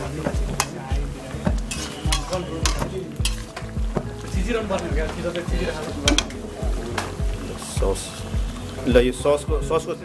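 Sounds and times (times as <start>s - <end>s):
metal spatula scraping a wok: 1.7s - 3.8s.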